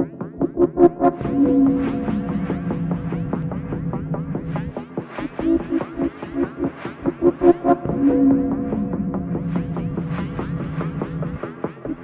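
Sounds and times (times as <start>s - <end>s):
low synth tone sliding down: 7.4s - 11.1s.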